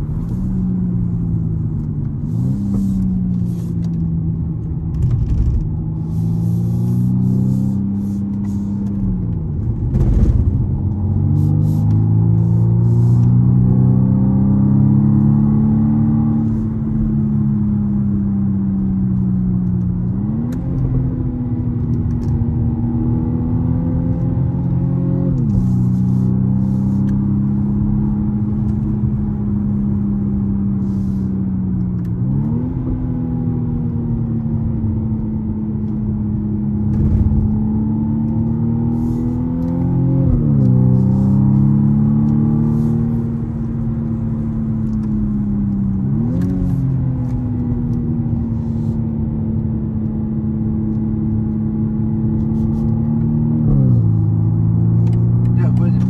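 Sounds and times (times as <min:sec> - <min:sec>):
car engine revving: 0:00.0 - 0:56.0
low road rumble: 0:00.0 - 0:56.0.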